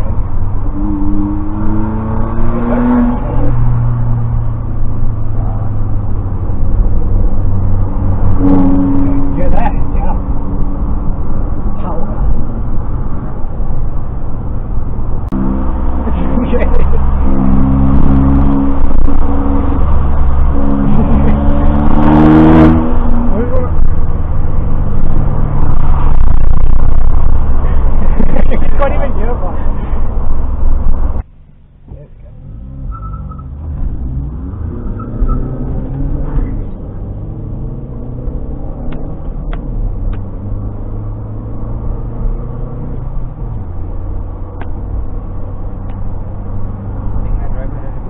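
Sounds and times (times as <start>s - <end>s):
car engine and road rumble: 0.0s - 48.0s.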